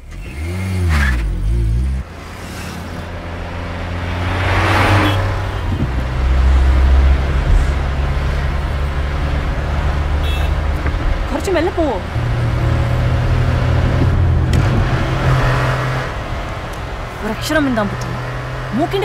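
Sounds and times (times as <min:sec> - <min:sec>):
car engine revving: 0:00.0 - 0:19.0.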